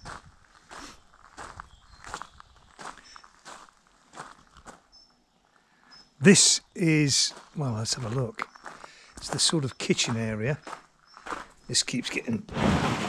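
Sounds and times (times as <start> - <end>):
faint footsteps walking: 0.0 - 5.6, 7.0 - 11.8.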